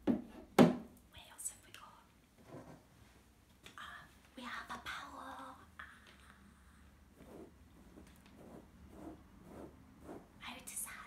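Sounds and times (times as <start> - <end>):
woman whispering: 1.1 - 2.2, 10.4 - 11.0.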